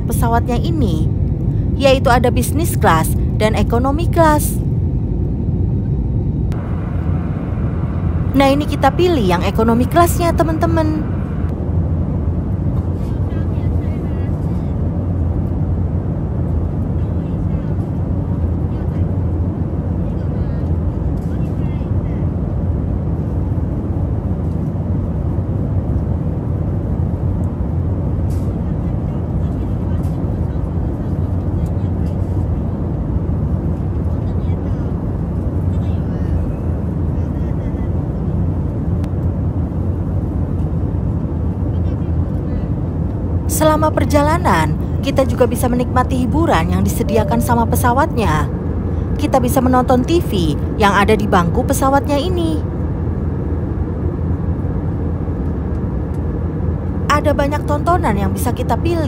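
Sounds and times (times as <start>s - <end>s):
airliner cabin rumble: 0.0s - 59.0s.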